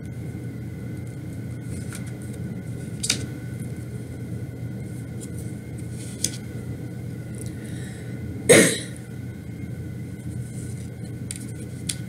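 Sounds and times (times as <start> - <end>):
low background hum: 0.0 - 12.0
person coughing: 8.5 - 9.0.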